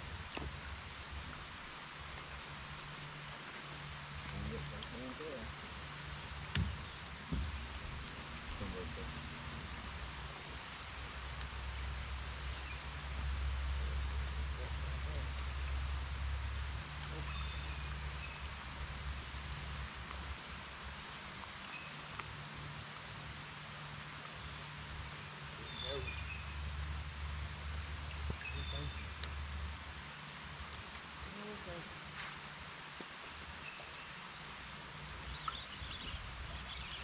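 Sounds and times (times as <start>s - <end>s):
low steady hum: 0.0s - 37.0s
rain on water and boat: 0.0s - 37.0s
faint sharp clicks: 4.2s - 5.0s, 9.8s - 11.9s, 14.2s - 15.8s, 21.4s - 22.4s, 28.0s - 29.6s, 35.3s - 36.1s.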